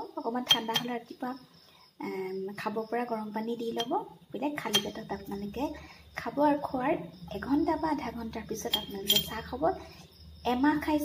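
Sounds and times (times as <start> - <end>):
metal spoon clinking glass jar: 0.5 - 1.0, 3.8 - 4.0, 4.6 - 5.2, 8.5 - 9.6.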